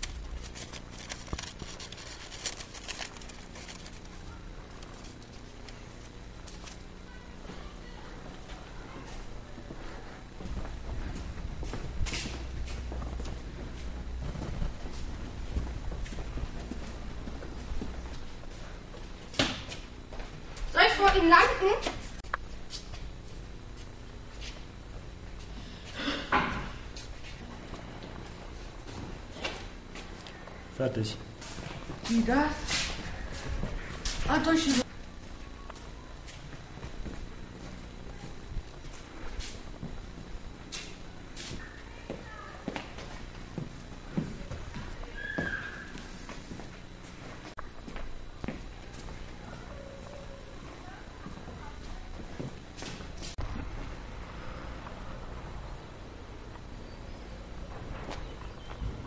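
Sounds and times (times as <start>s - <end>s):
steady low rumble: 0.0s - 20.7s, 53.3s - 59.0s
footsteps on hard floor: 10.4s - 18.3s, 35.8s - 49.2s.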